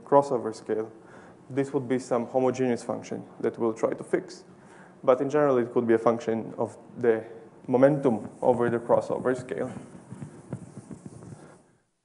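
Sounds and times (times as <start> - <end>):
chalk tapping on blackboard: 8.1 - 11.6.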